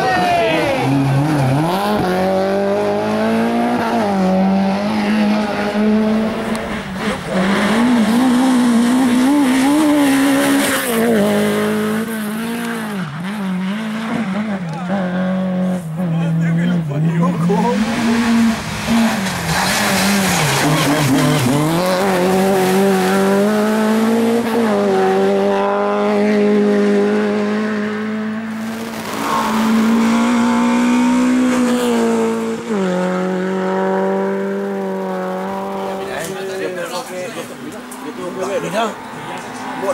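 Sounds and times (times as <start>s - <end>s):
rally car engine revving: 0.0s - 39.9s.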